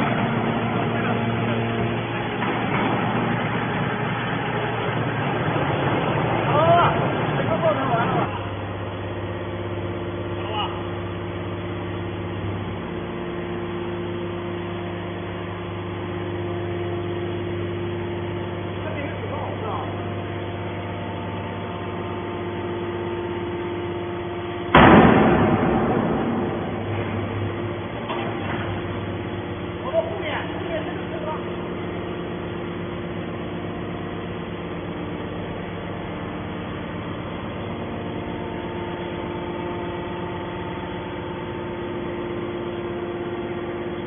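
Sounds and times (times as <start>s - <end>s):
baler motor and pump hum: 0.0s - 44.0s
loud bang: 24.7s - 28.5s.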